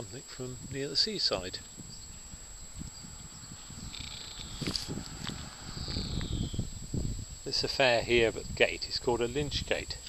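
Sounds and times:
insects chirring: 0:00.0 - 0:10.0
camera handling rumble: 0:03.8 - 0:06.5.

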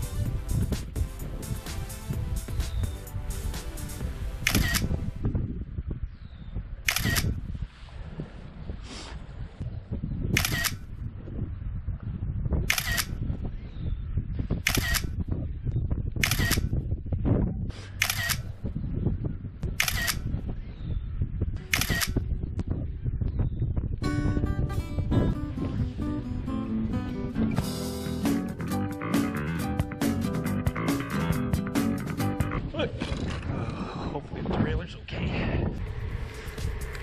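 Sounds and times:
music: 0:00.0 - 0:05.3, 0:24.0 - 0:32.7
camera shutter clicks: 0:04.4 - 0:04.9, 0:06.9 - 0:07.3, 0:10.4 - 0:10.8, 0:12.7 - 0:13.1, 0:14.7 - 0:15.1, 0:16.2 - 0:16.7, 0:18.0 - 0:18.5, 0:19.8 - 0:20.2, 0:21.7 - 0:22.2.

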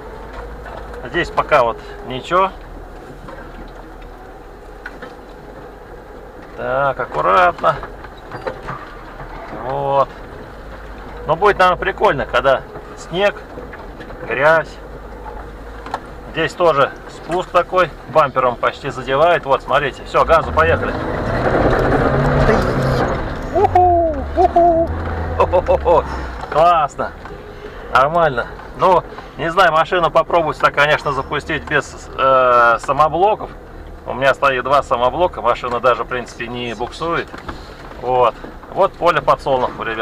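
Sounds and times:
car engine running low: 0:00.0 - 0:40.0
man exclaiming ooh: 0:23.5 - 0:26.0.

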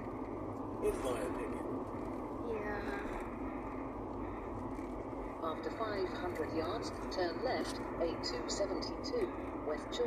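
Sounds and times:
car interior road noise: 0:00.0 - 0:10.0.

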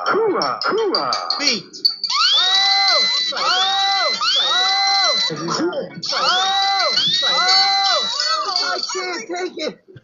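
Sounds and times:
rising pitched cry: 0:02.0 - 0:05.4, 0:06.1 - 0:08.8.

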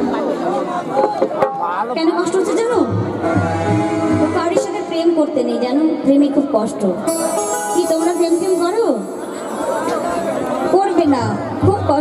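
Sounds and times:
crowd chatter: 0:00.0 - 0:12.0
people talking over pa system: 0:00.0 - 0:12.0.

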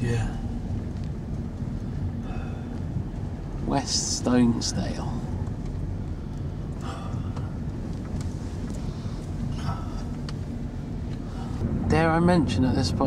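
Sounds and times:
car engine and tyre drone: 0:00.0 - 0:13.0.

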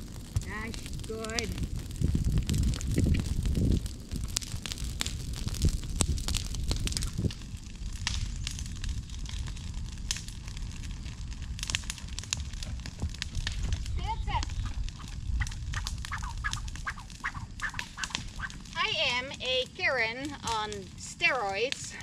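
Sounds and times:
bonfire crackling and popping: 0:00.0 - 0:22.0
low fire rumble: 0:00.0 - 0:22.0.

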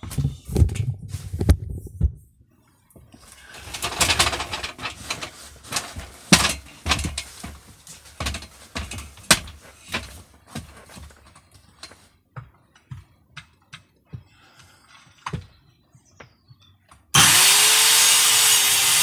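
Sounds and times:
rustling: 0:02.6 - 0:12.3
knocks and clicks from handling gear: 0:03.0 - 0:14.3.

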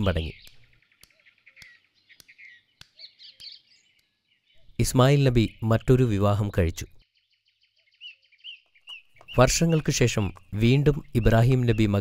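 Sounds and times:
bird chirps: 0:00.0 - 0:12.0
steady bird twittering: 0:00.0 - 0:12.0.

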